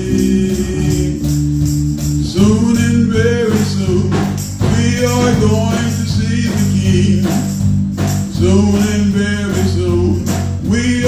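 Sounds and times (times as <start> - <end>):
person singing: 0.0 - 1.4, 2.2 - 7.5, 8.3 - 11.0
drum kit: 0.0 - 11.0.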